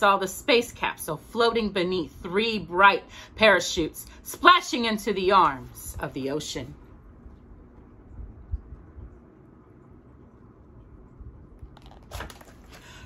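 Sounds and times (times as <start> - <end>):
book rustle: 11.6 - 13.0
book handling bumps: 11.7 - 13.0.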